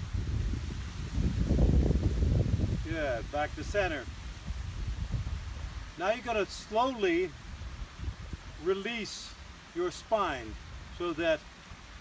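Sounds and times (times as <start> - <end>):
wind buffeting microphone: 0.0 - 8.7.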